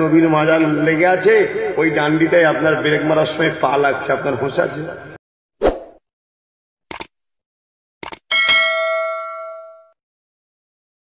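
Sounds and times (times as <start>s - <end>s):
quick clicks: 6.9s - 7.1s, 8.0s - 8.2s
bell ding: 8.3s - 10.0s.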